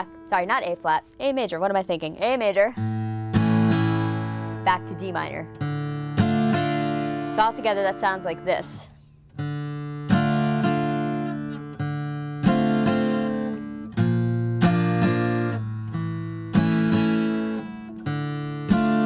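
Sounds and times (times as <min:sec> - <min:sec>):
acoustic guitar strumming chords: 0:00.0 - 0:19.0.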